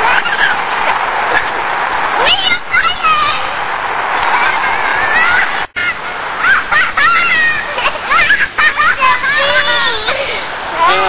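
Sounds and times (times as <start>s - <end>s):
running water rushing: 0.0s - 11.0s
children shouting and squealing: 4.2s - 11.0s.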